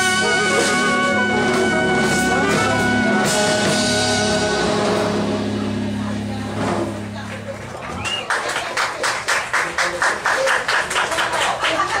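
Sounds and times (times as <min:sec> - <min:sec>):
audience applauding: 0:07.0 - 0:12.0.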